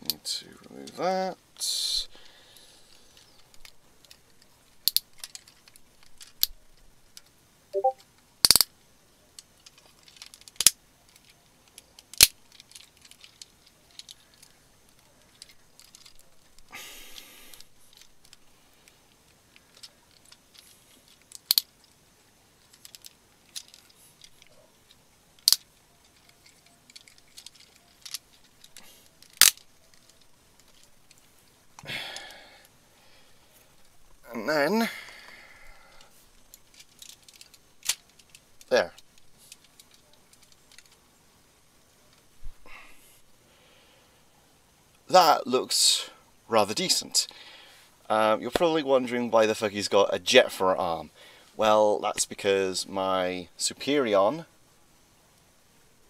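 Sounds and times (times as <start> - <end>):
handling rustle: 2.9 - 7.4, 9.3 - 34.2, 35.9 - 42.6
plastic toy parts clicking: 3.2 - 7.3, 8.4 - 8.7, 9.4 - 18.4, 19.5 - 21.9, 22.6 - 31.3, 36.4 - 41.0.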